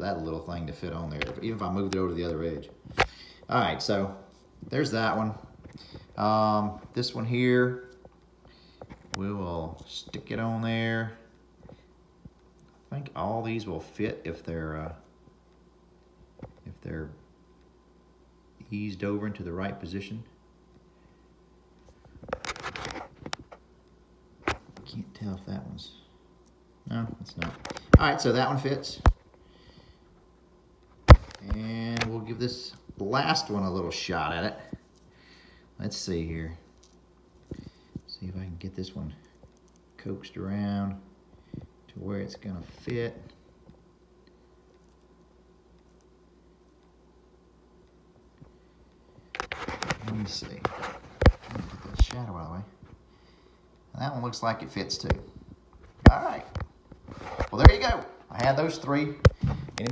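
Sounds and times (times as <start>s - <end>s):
faint steady hum: 0.0s - 59.9s
hand scraping and rustling: 49.0s - 52.3s.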